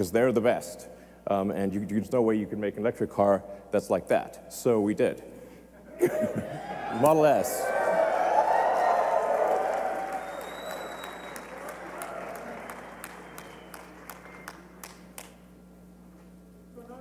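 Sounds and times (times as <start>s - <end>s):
large audience applauding: 7.7s - 15.4s.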